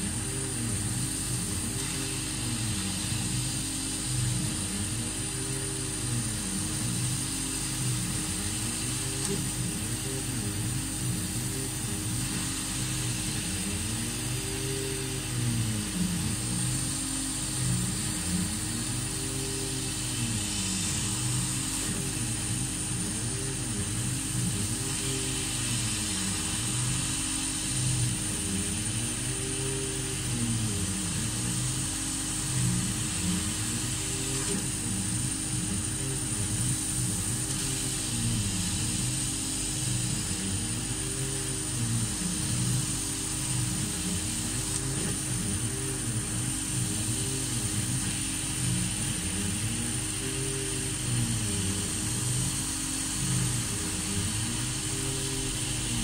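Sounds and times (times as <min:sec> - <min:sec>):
high hiss: 0:00.0 - 0:56.0
machine hum: 0:00.0 - 0:56.0.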